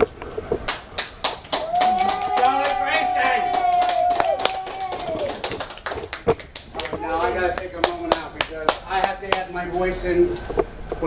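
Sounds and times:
people clapping: 0.6 - 9.9
person whooping: 1.5 - 5.6.

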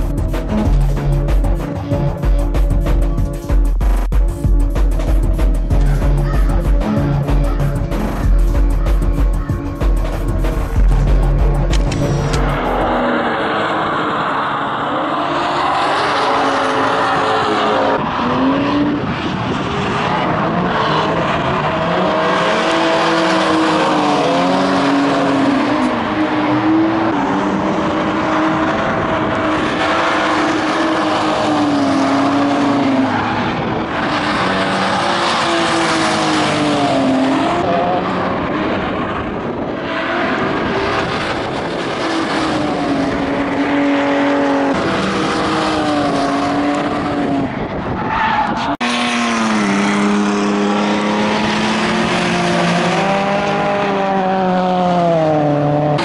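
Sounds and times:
car engines revving: 0.0 - 56.0
tyres squealing and skidding: 12.1 - 38.4, 42.1 - 54.6.

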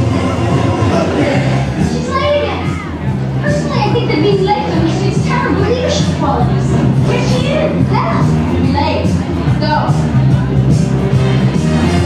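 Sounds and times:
music over loudspeakers: 0.0 - 12.0.

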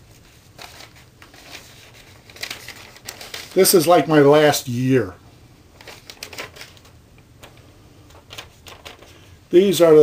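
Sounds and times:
paper crackling and rustling: 0.0 - 4.2, 5.7 - 9.3.

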